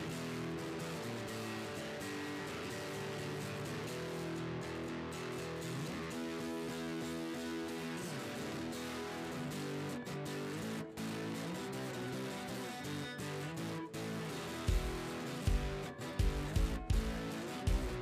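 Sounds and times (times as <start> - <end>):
acoustic guitar chords: 6.8 - 18.0.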